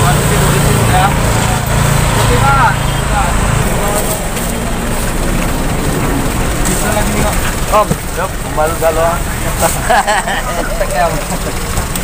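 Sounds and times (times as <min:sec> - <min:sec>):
background din of people: 0:00.0 - 0:12.0
small motorcycle engine idling: 0:00.0 - 0:12.0.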